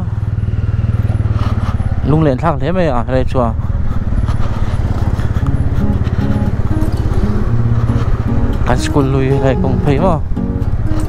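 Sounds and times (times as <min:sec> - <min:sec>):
motorcycle engine running: 0:00.0 - 0:11.0
person speaking: 0:08.2 - 0:10.6.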